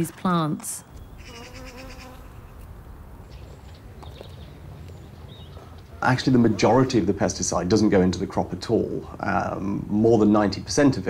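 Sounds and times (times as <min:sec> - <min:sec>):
bee buzzing: 0:01.2 - 0:02.8.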